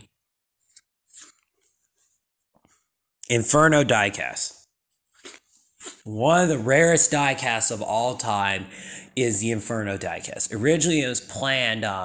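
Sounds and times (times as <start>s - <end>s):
faint mouth sound: 5.2s - 6.1s.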